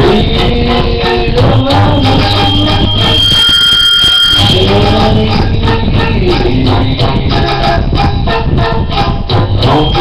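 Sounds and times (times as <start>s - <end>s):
person singing into a microphone: 0.0s - 3.5s, 4.4s - 10.0s
steady high tone: 0.0s - 8.6s, 9.5s - 10.0s
karaoke backing track: 0.0s - 10.0s.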